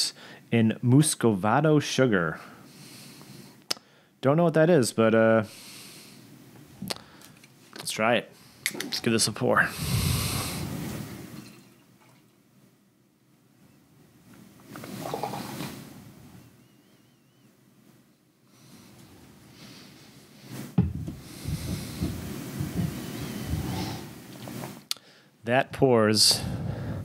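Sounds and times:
liquid pouring and gurgling: 0:14.8 - 0:15.6.

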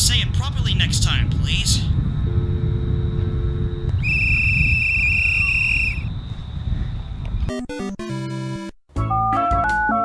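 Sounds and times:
wind buffeting microphone: 0:00.0 - 0:07.5.

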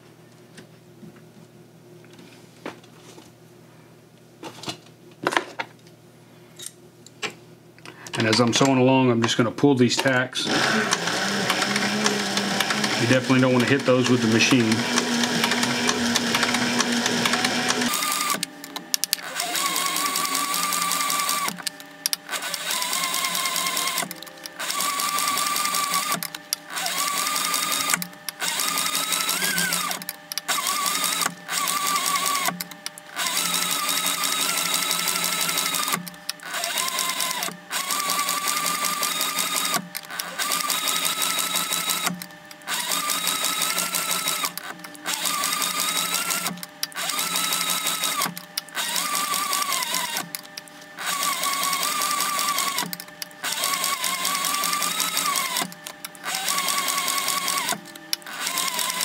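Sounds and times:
sewing machine stitching leather: 0:10.5 - 0:59.0.

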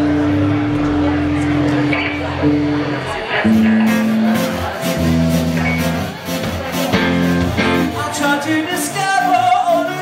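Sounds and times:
rock band sustained notes: 0:00.0 - 0:10.0.

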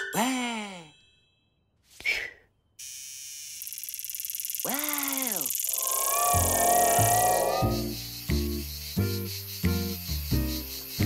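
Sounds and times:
cartoon cicada buzzing: 0:02.8 - 0:11.0
cartoon character exclamation: 0:04.7 - 0:07.8.

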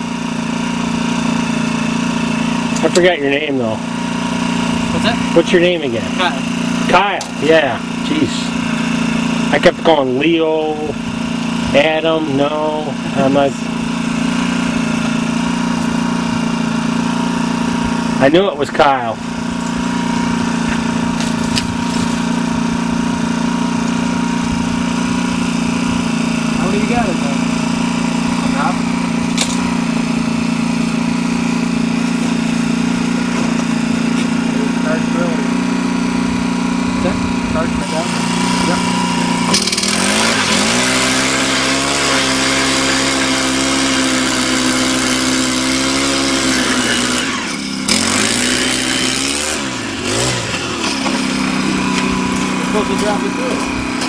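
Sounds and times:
ice auger engine running: 0:00.0 - 0:54.0.

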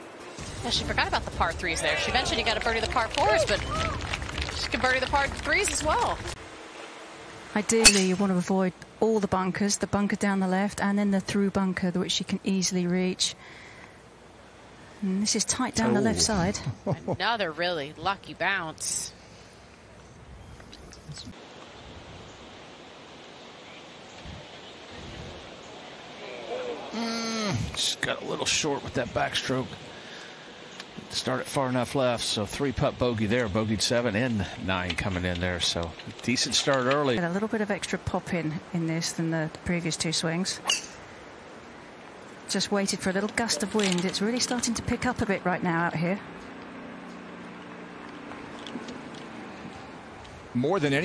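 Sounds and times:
outdoor background hiss: 0:00.0 - 0:51.0
wind rumble on microphone: 0:24.2 - 0:25.5.

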